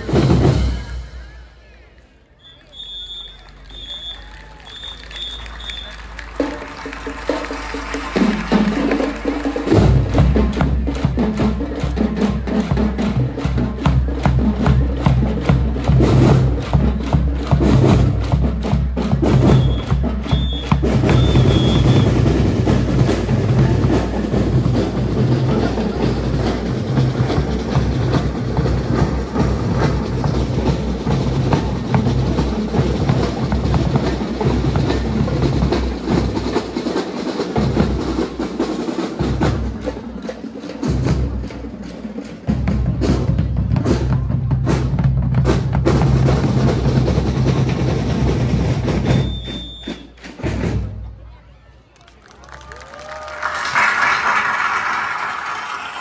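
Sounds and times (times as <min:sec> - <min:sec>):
snare drums: 0:00.0 - 0:01.4, 0:02.7 - 0:51.1
bass drums: 0:06.4 - 0:36.8, 0:42.5 - 0:49.4.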